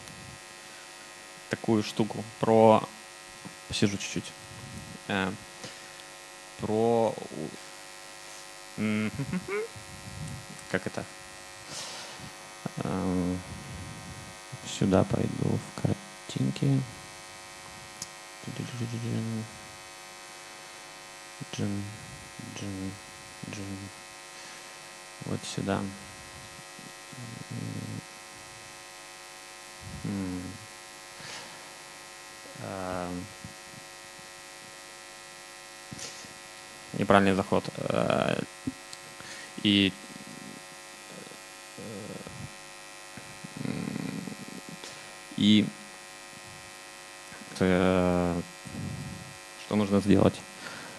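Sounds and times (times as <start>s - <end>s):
electrical mains hum: 0.0s - 50.9s
man's voice over a microphone: 12.7s - 17.0s, 18.5s - 19.6s, 21.4s - 23.9s.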